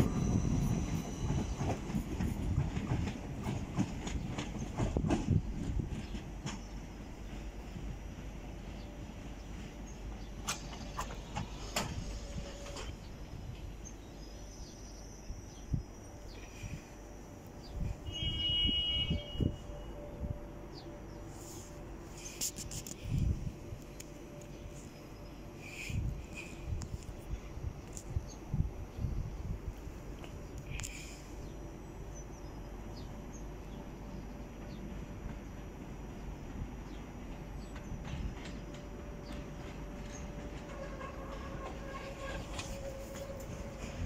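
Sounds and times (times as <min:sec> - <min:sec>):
distant train whine: 0:00.0 - 0:44.0.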